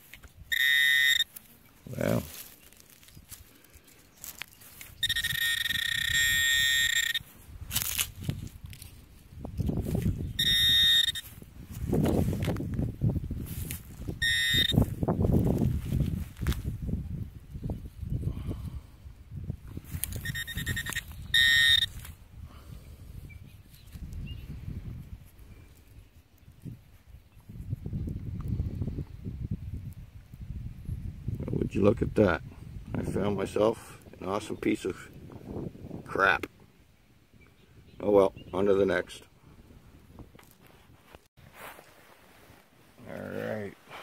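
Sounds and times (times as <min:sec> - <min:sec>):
soil being dug by hand: 0:00.0 - 0:12.8
metal detector high tone: 0:00.4 - 0:01.4, 0:04.8 - 0:07.3, 0:10.2 - 0:11.4, 0:14.2 - 0:14.9, 0:20.0 - 0:22.1.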